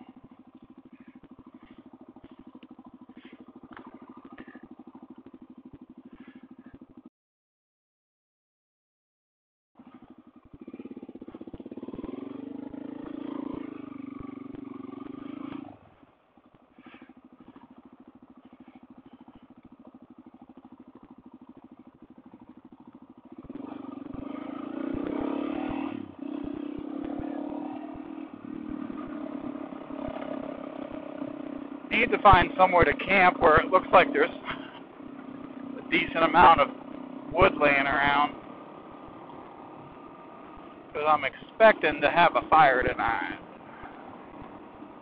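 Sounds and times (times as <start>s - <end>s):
motorcycle engine: 0.0s - 7.1s, 9.8s - 45.0s.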